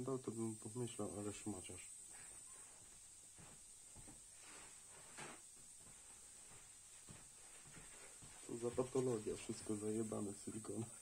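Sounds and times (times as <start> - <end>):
faint high hiss: 0.0 - 11.0.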